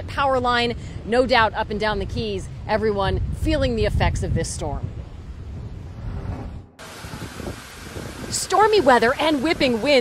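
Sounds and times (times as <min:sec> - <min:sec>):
storm wind buffeting microphone: 0:00.0 - 0:10.0.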